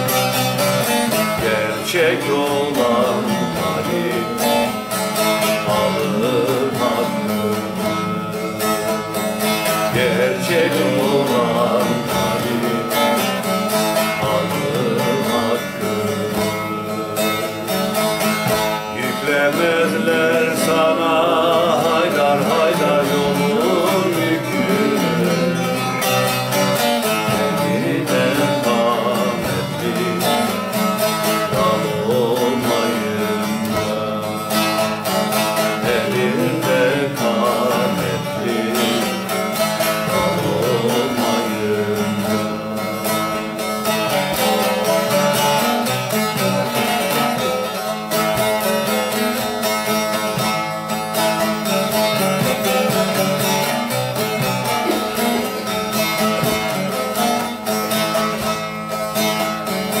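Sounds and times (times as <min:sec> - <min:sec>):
man singing: 0:00.0 - 0:50.4
long-necked lute playing folk melody: 0:00.0 - 1:00.0.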